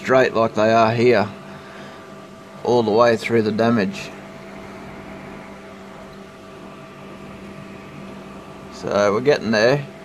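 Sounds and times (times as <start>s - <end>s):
machine hum: 0.0s - 10.0s.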